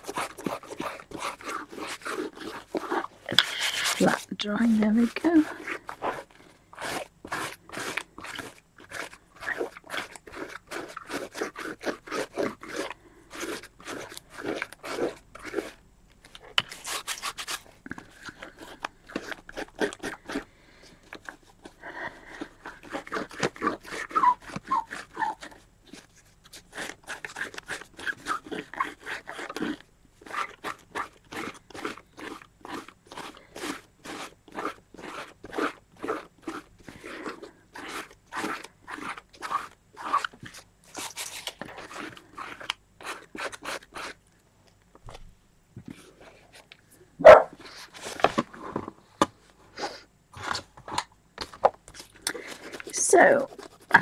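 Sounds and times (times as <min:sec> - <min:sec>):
fingertips scrubbing paper: 0:00.0 - 0:15.8, 0:16.7 - 0:44.2, 0:52.0 - 0:54.0.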